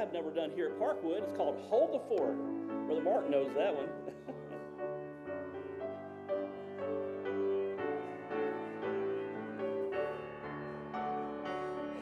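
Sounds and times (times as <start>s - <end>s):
grand piano playing chords: 0.0s - 12.0s.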